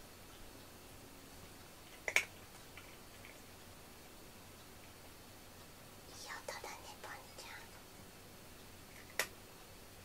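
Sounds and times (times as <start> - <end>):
person whispering: 6.1 - 7.8.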